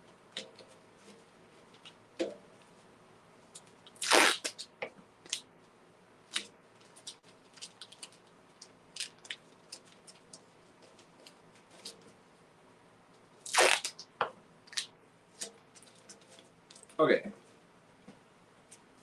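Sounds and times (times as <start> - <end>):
tape ripping off roll: 4.0 - 4.7, 13.5 - 14.0
tape crackling and clicking: 6.3 - 12.1.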